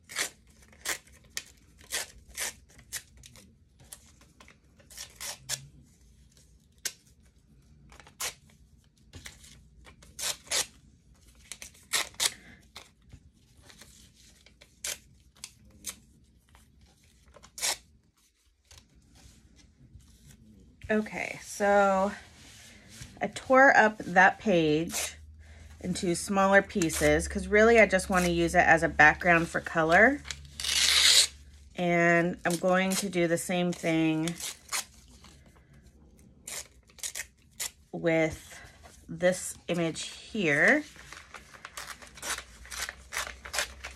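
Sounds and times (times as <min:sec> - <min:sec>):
paper page tearing: 0:10.0 - 0:10.8, 0:17.2 - 0:17.9, 0:29.3 - 0:31.4, 0:40.5 - 0:43.9.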